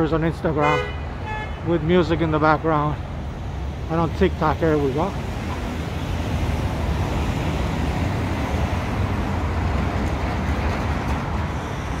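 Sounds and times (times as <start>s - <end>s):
passing cars rumble: 0.0s - 12.0s
road hiss: 0.1s - 12.0s.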